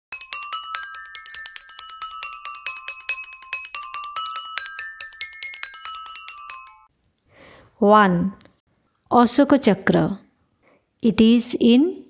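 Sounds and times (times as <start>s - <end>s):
glockenspiel jingle: 0.1s - 6.9s
woman speaking: 7.8s - 8.4s, 9.1s - 10.3s, 11.0s - 12.0s.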